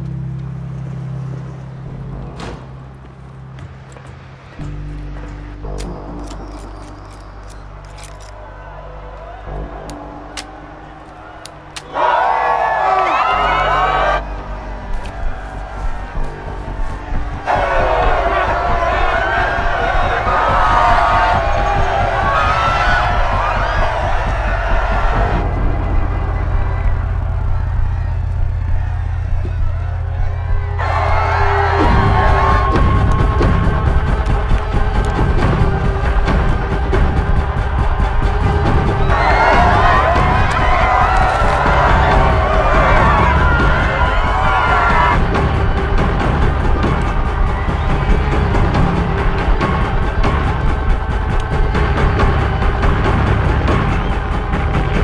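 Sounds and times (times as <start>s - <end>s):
crowd screaming and cheering: 0.0s - 55.0s
film score low tones: 0.0s - 55.0s.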